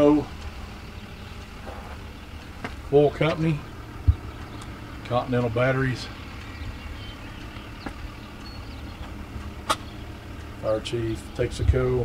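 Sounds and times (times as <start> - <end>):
low outdoor rumble: 0.0 - 12.0
sharp clicks: 6.2 - 10.6.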